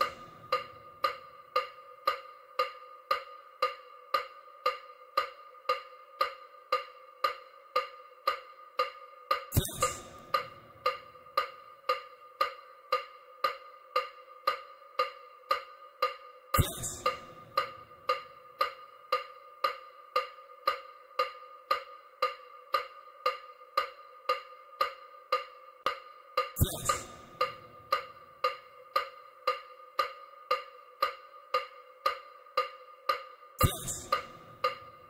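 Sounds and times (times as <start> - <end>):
electronic wood block clicks: 0.0 - 35.0.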